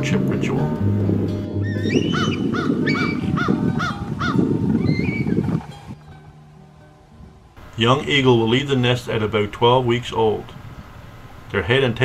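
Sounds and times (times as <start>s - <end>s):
background music: 0.0s - 4.3s
bird calling: 1.6s - 6.0s.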